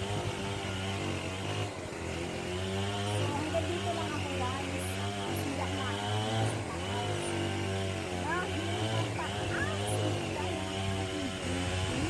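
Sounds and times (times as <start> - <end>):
low motor drone: 0.0 - 12.0
person talking: 3.1 - 7.4, 8.2 - 12.0.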